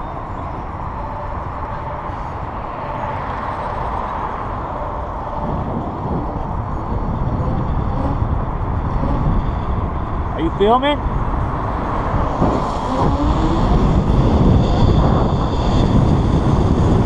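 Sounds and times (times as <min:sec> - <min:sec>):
wind rushing over microphone: 0:00.0 - 0:17.0.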